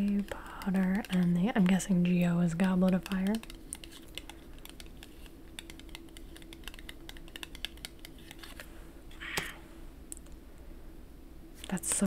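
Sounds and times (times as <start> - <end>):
fingernails tapping on paper: 0.0 - 8.4
faint steady hum: 0.0 - 12.0.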